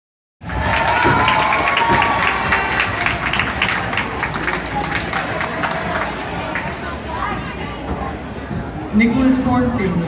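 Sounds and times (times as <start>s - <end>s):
audience applauding: 0.4s - 7.0s
crowd cheering: 0.4s - 7.4s.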